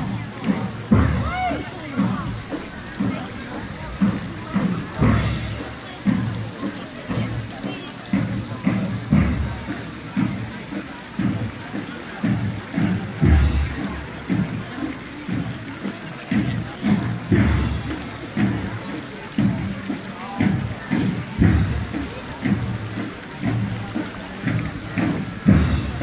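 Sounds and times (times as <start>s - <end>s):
crowd chattering: 0.0s - 26.0s
fountain water splashing: 0.0s - 26.0s
music: 0.0s - 26.0s.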